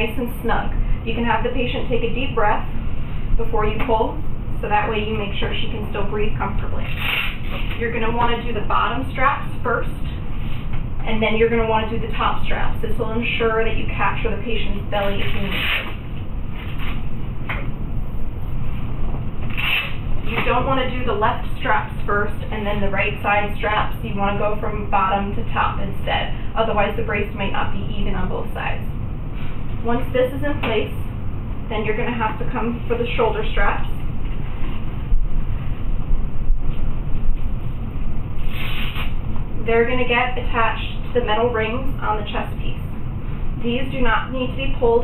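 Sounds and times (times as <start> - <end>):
low background rumble: 0.0 - 45.0.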